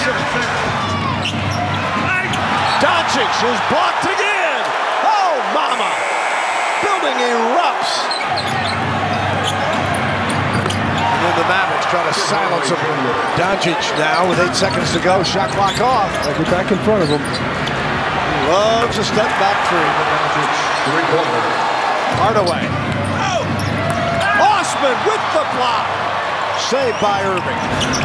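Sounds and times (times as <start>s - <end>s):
sports commentary: 0.0s - 9.9s, 11.0s - 17.4s, 18.2s - 28.0s
crowd cheering: 0.0s - 28.0s
sneaker squeaks: 1.0s - 3.0s, 8.0s - 8.8s, 9.4s - 11.1s, 15.5s - 17.8s, 22.4s - 23.8s, 26.9s - 28.0s.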